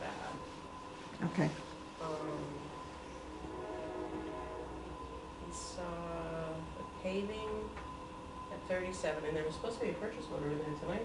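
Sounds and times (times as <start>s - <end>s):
distant horn chord blast: 2.6s - 6.8s.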